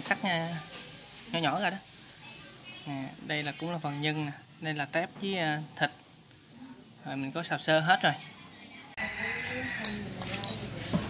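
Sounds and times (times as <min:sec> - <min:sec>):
dishes clinking: 0:09.4 - 0:11.0.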